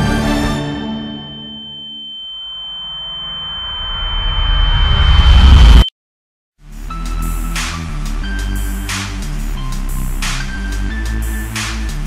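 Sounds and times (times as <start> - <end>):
steady high tone: 0.0 - 5.9
rising transition sound effect: 3.6 - 5.9.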